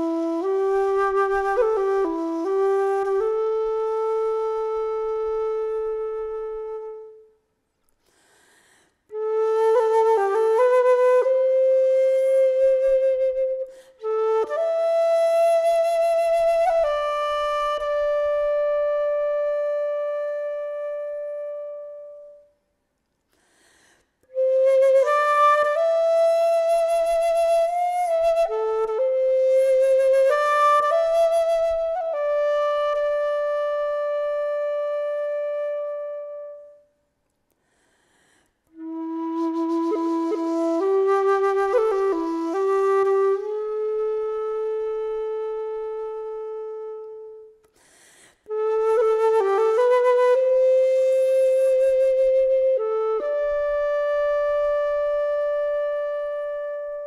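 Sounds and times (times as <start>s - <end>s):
wooden flute playing slow air: 0.0s - 22.7s, 23.4s - 57.0s.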